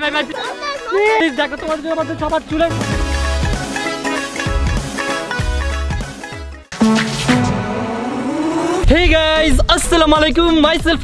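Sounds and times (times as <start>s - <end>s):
car engine revving: 6.7s - 8.8s.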